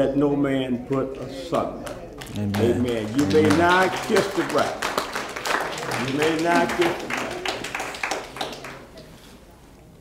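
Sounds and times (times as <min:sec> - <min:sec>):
people clapping: 0:00.9 - 0:09.1.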